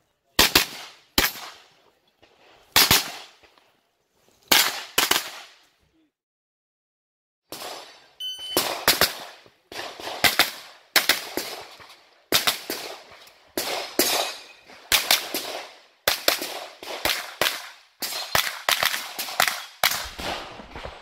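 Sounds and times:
carbine gunshots with echo: 0.4 - 1.8, 2.7 - 3.4, 4.5 - 5.6, 7.5 - 21.0
shot timer beep: 8.2 - 8.7.

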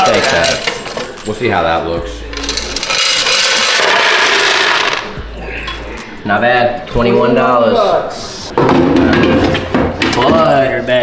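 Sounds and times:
coins pouring into plastic tray: 2.4 - 5.0.

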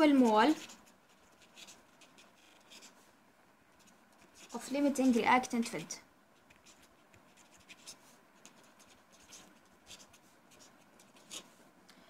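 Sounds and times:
pen scratching on paper: 0.0 - 3.0, 3.7 - 5.5, 6.4 - 11.6.

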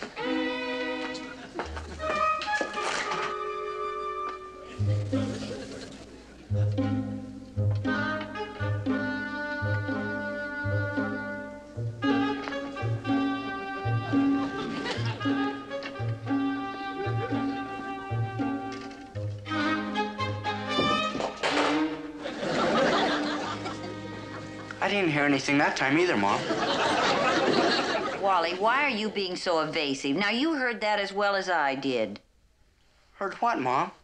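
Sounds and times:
sustained string notes: 3.1 - 20.9, 21.9 - 26.6
plodding bass line: 6.5 - 14.4.

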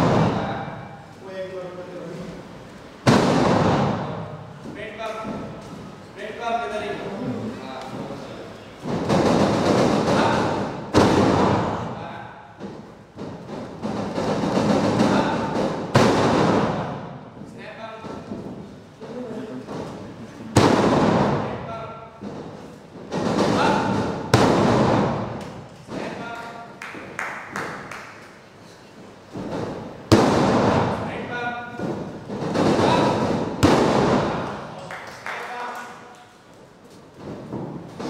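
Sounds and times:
thuds and footfalls on ring mat: 12.6 - 21.5, 22.2 - 26.2, 36.8 - 38.0.

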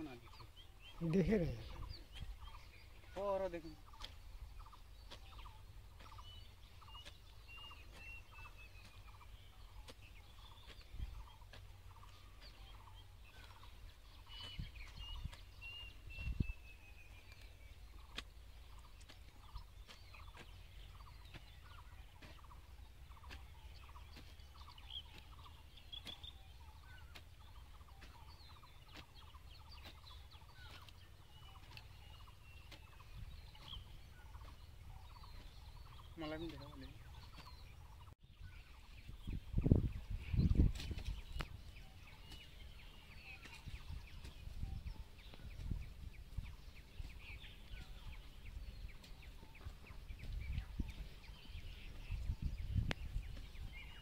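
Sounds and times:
bird calling: 0.0 - 54.0.

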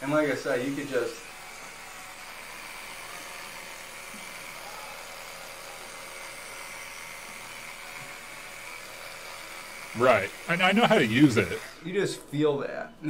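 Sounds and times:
electric toothbrush buzzing: 0.0 - 13.0.

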